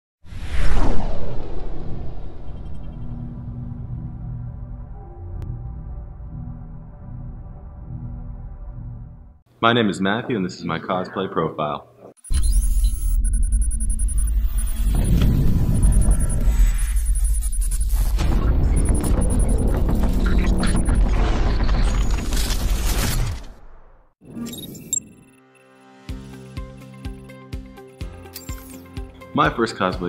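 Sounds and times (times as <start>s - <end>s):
whoosh with deep rumble: 0.2s - 9.3s, 13.3s - 22.1s.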